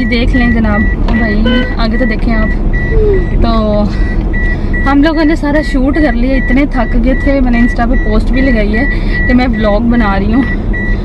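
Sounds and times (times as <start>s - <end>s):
engine and road rumble: 0.0s - 11.0s
short high electronic beep: 1.4s - 1.8s.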